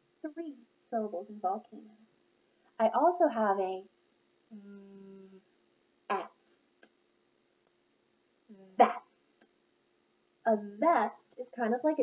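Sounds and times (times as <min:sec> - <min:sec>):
woman humming: 0:04.5 - 0:05.4, 0:08.5 - 0:09.0.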